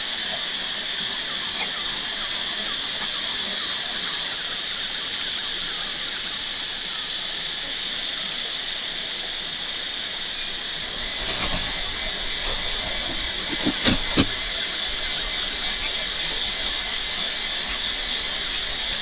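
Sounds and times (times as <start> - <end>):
insect chorus drone: 0.0 - 19.0.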